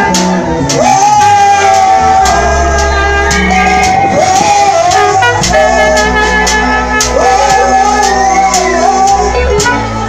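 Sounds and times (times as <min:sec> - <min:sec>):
live gospel band playing: 0:00.0 - 0:10.0.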